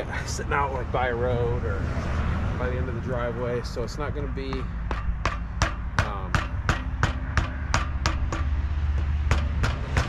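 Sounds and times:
hammer tapping on wood: 4.4s - 10.0s.

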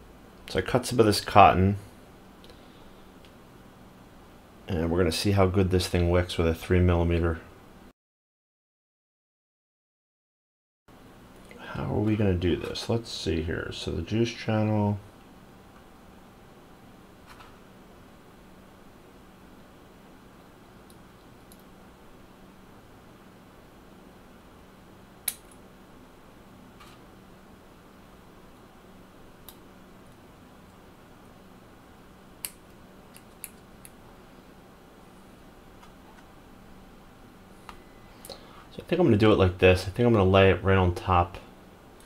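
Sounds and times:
faint low hum: 10.9s - 42.0s.

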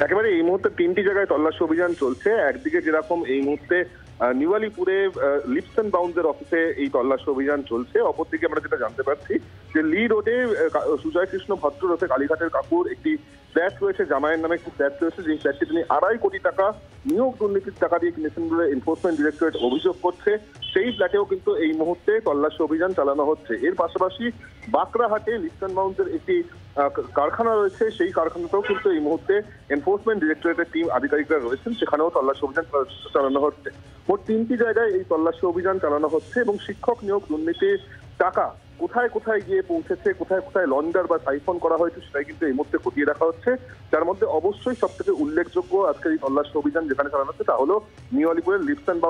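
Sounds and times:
man speaking over a phone line: 0.0s - 49.0s
man talking: 0.0s - 49.0s.

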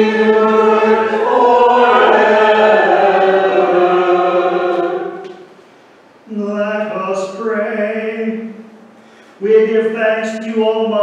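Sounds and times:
congregation singing a hymn: 0.0s - 5.6s, 6.3s - 8.6s.

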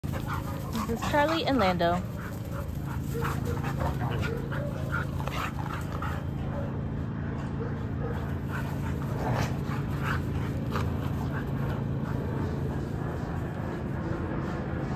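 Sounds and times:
dogs yipping and whining: 0.0s - 14.9s
steady low hum: 0.0s - 14.9s.

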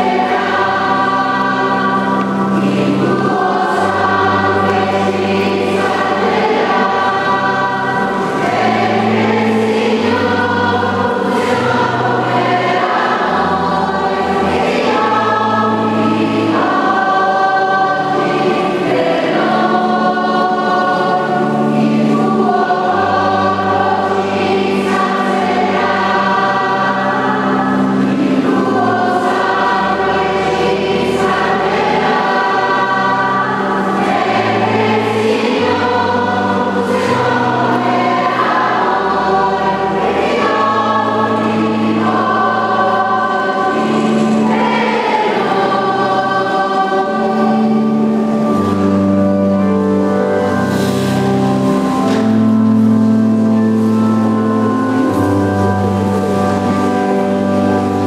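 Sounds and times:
choir singing a hymn: 0.0s - 58.0s.

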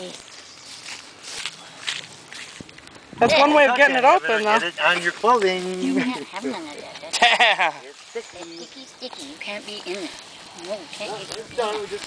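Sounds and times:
footsteps in dry grass: 0.0s - 12.0s.

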